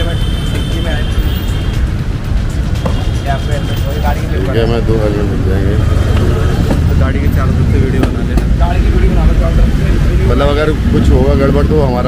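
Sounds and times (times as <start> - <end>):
low rumble of street noise: 0.0 - 12.0
men talking: 0.0 - 12.0.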